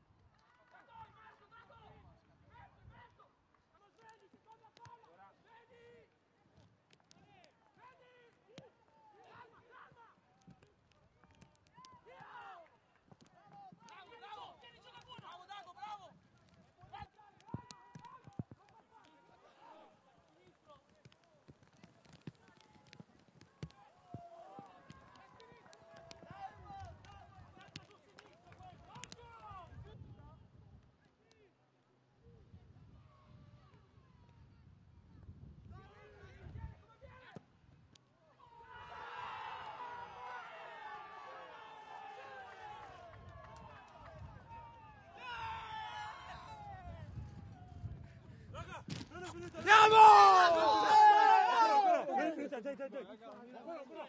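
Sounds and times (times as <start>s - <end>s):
players shouting: 38.4s - 46.8s, 49.3s - 52.8s
distant players shouting: 49.4s - 52.4s.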